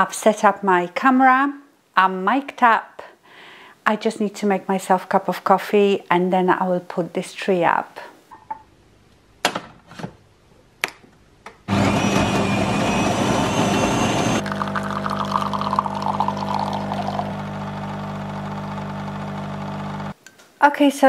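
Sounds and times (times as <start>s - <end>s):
coffee machine grinding: 11.7s - 20.1s
coffee machine pump humming: 11.7s - 20.2s
coffee pouring into mug: 14.4s - 18.8s.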